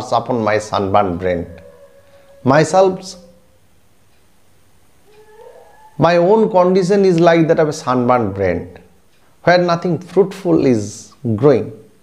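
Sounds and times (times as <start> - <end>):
faint rising animal call: 0.6 - 3.7, 5.0 - 6.5.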